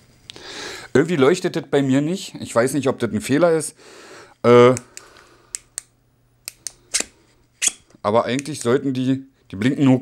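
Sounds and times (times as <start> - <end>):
flashlight switch clicks: 4.8 - 7.1.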